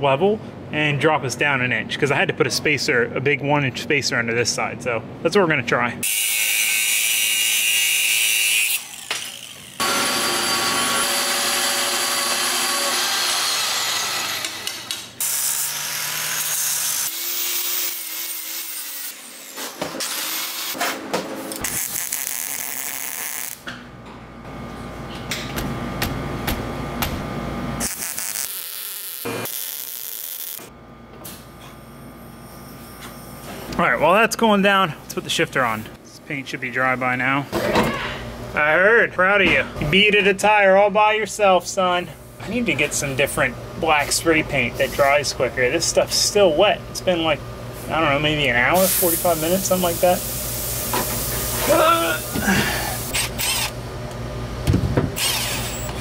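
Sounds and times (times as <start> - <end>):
angle grinder cutting steel: 6.0 - 20.8, 55.2 - 56.0
welding crackling: 21.6 - 23.6, 27.8 - 30.7.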